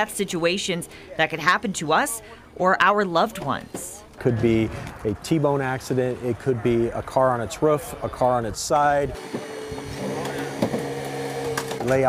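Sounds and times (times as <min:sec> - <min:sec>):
hydraulic power unit hum: 0:04.6 - 0:12.0.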